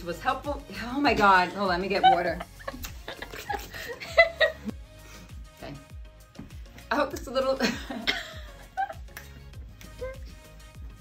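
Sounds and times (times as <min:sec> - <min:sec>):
background music: 0:00.0 - 0:11.0
woman laughing: 0:01.5 - 0:04.7, 0:07.6 - 0:09.1.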